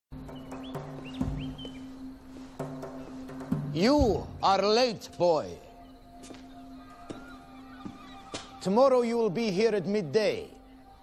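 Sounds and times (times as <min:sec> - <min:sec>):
small birds chirping: 0:00.1 - 0:11.0.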